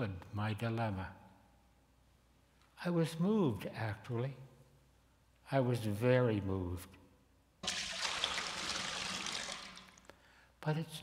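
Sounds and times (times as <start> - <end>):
water pouring: 7.6 - 10.1.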